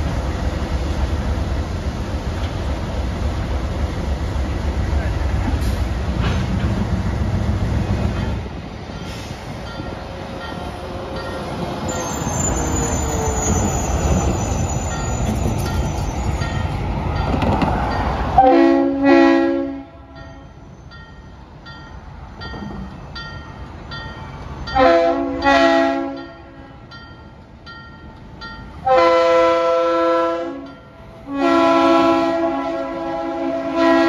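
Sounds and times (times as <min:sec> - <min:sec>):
locomotive horn blasts: 0:18.4 - 0:20.4, 0:24.7 - 0:26.9, 0:28.8 - 0:34.0.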